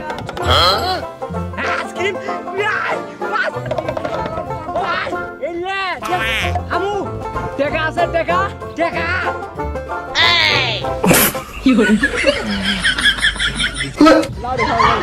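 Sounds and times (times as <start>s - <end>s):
cartoon sliding-pitch sound effects: 6.0s - 6.6s
upbeat comic music: 6.0s - 7.2s, 9.0s - 13.9s.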